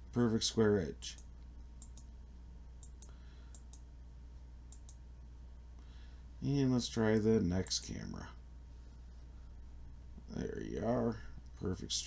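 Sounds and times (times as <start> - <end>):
steady low hum: 0.0 - 12.0
computer mouse clicks: 1.1 - 2.1, 2.8 - 3.9, 4.7 - 5.0.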